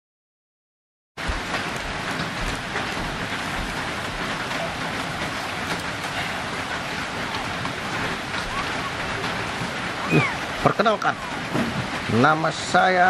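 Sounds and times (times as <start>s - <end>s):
water hissing and pattering: 1.2s - 13.0s.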